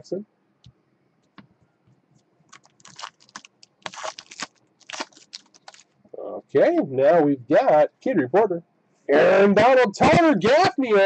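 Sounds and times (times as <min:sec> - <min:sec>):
foil wrapper tearing and crinkling: 0:02.5 - 0:05.9.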